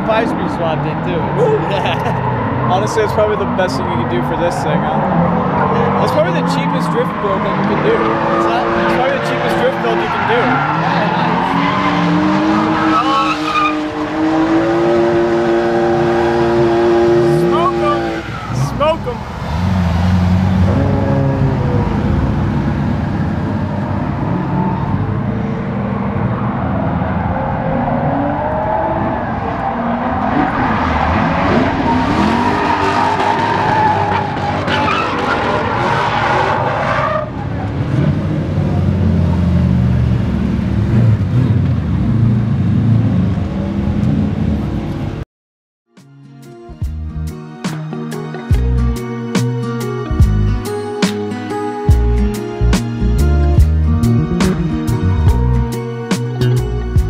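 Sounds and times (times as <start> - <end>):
car engines revving hard: 0.0 - 45.2, 51.9 - 57.0.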